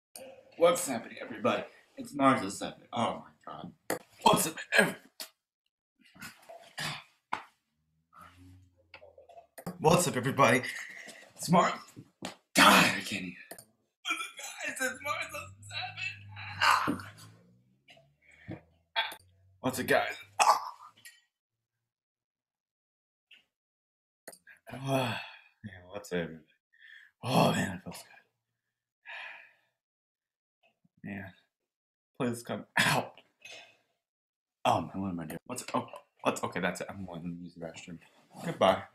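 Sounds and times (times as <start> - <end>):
breathy yelping vocal sounds: 15.4 - 17.4
person sighing: 24.7 - 25.5.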